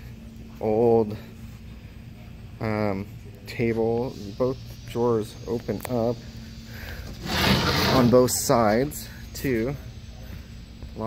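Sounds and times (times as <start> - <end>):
wooden sliding door scraping: 7.2 - 8.4.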